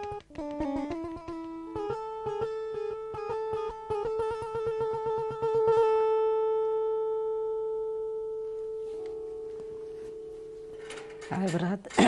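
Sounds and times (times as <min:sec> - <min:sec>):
lyre plucked notes: 0:00.0 - 0:12.0.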